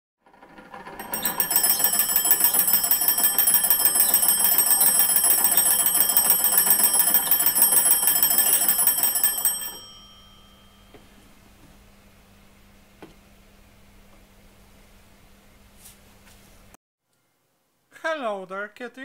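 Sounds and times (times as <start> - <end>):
telephone bell ringing: 1.0 - 11.1.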